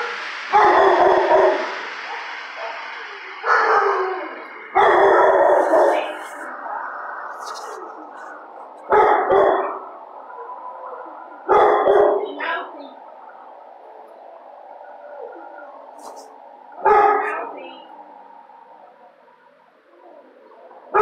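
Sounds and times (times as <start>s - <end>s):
dog barking with echo: 0.0s - 6.3s, 8.8s - 9.9s, 11.4s - 12.5s, 16.8s - 17.6s.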